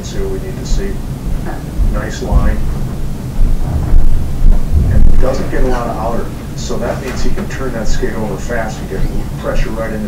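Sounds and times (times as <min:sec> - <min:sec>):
low background rumble: 0:00.0 - 0:10.0
wind noise on microphone: 0:00.7 - 0:06.6.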